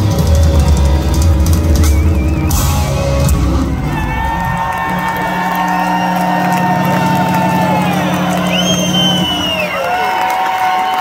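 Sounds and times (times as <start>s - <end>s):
band drumming: 0.0s - 10.3s
crowd cheering: 0.0s - 11.0s
held electric guitar tone: 2.5s - 9.8s.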